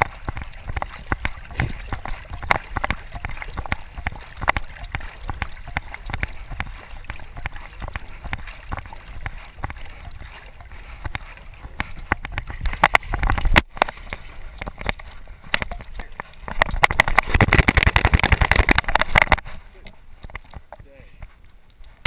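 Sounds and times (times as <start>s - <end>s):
dog scrambling over rocks: 0.0s - 20.8s
water splashing and gurgling: 0.0s - 22.0s.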